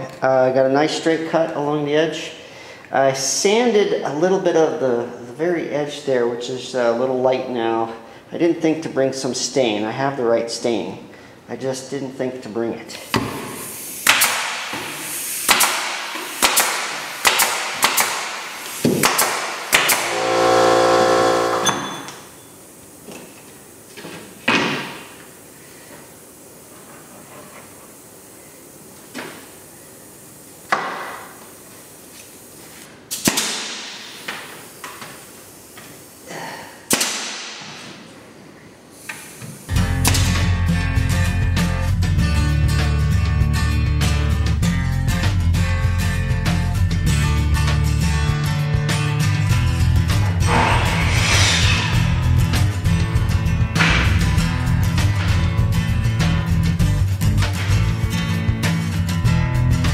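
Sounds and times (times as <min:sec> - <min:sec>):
pneumatic nailer firing: 0:13.1 - 0:22.2, 0:33.1 - 0:35.1, 0:36.9 - 0:38.0, 0:53.8 - 0:54.3
brief hum: 0:19.8 - 0:22.3, 0:50.4 - 0:52.8.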